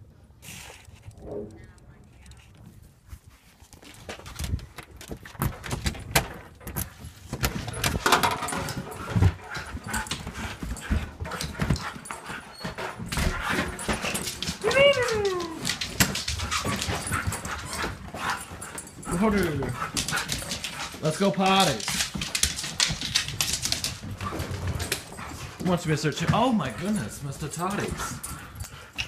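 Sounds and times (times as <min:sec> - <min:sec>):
husky whining and howling: 0:12.1 - 0:20.3.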